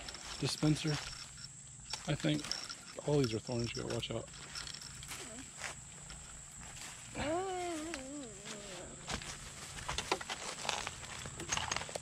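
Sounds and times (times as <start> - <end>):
dry leaves and twigs crackling: 0.0 - 12.0
wordless vocal call: 7.1 - 9.2.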